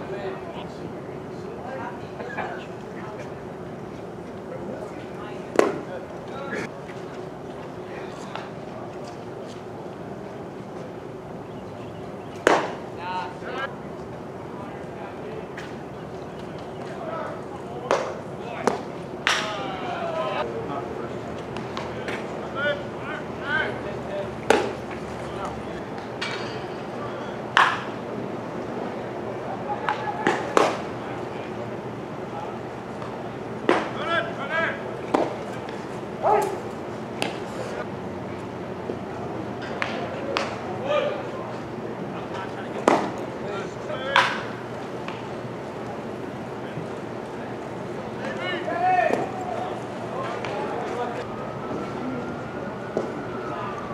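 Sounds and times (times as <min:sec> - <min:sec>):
baseball smacking into mitt: 0:12.4 - 0:12.8
called-out voices: 0:14.4 - 0:21.0.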